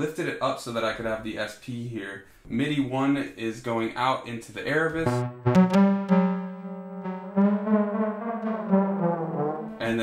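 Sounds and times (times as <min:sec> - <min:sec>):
synthesizer held note: 0:05.0 - 0:10.0.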